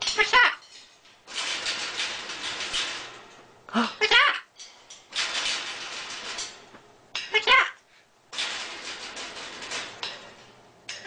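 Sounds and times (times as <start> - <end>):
bird scratching in wire cage: 0.2 - 3.4, 5.0 - 6.7, 8.3 - 10.6.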